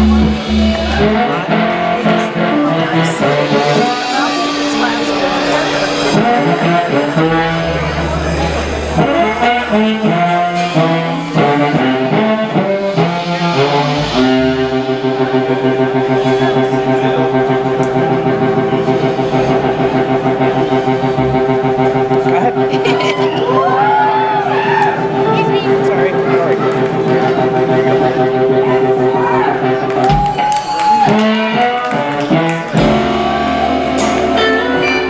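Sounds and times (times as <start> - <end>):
electric blues band playing: 0.0 - 35.0.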